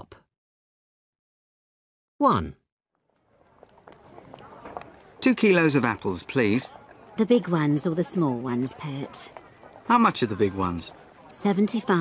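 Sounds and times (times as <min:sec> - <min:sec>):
faint footsteps: 0:03.0 - 0:12.0
murmur of distant voices: 0:03.0 - 0:12.0.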